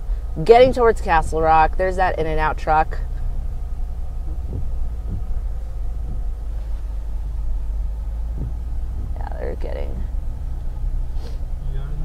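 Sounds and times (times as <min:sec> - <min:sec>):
car engine and tyres rumbling: 0:00.0 - 0:12.0
faint soft knocks: 0:04.0 - 0:09.2.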